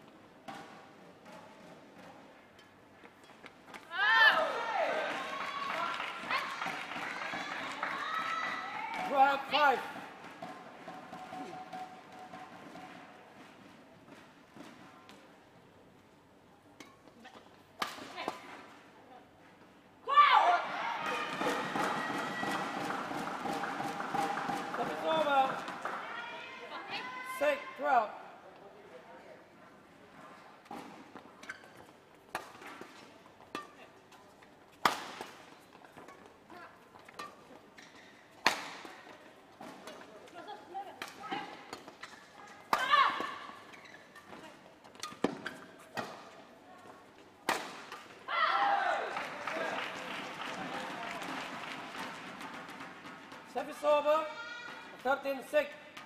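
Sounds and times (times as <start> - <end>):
crowd cheering: 3.9 - 9.5, 20.1 - 27.4, 48.3 - 52.7
players shouting: 3.9 - 9.9, 20.0 - 27.9
racket striking shuttlecock: 10.0 - 13.1, 17.8 - 18.6, 21.4 - 26.0, 32.3 - 36.3, 37.0 - 39.0, 47.4 - 48.1.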